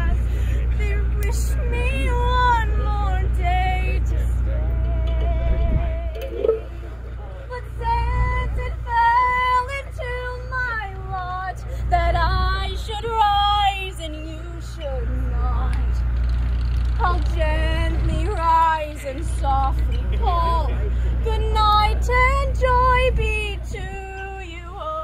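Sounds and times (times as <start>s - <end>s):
steady low rumble: 0.0s - 25.0s
woman singing slow melody: 0.8s - 6.6s, 17.0s - 25.0s.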